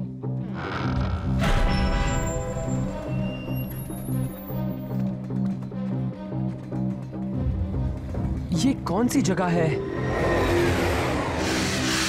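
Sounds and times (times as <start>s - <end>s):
train rushing noise: 9.8s - 12.0s.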